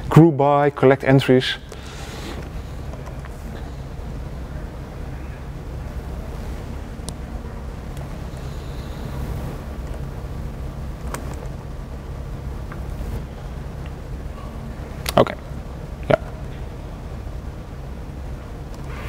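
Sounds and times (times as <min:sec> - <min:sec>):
steady low room hum: 0:00.0 - 0:19.0.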